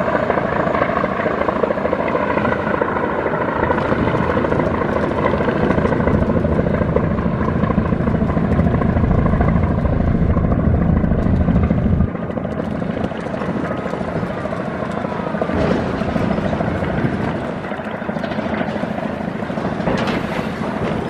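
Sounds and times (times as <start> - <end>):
bow wash hissing and churning: 0.0 - 21.0
boat engines rumbling: 3.6 - 21.0.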